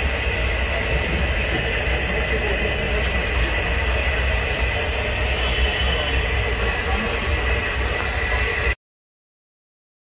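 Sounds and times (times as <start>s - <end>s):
even hiss: 0.0s - 8.8s.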